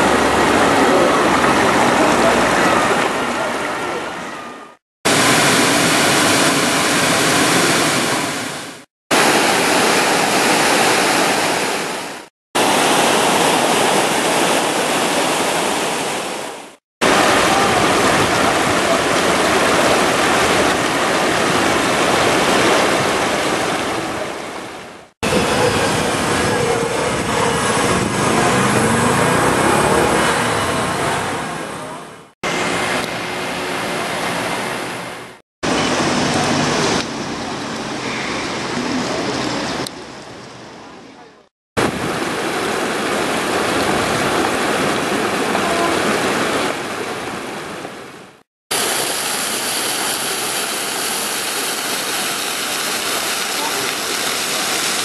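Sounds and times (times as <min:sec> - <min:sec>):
stream rushing over rocks: 0:00.0 - 0:04.4, 0:05.1 - 0:40.4, 0:41.8 - 0:55.0.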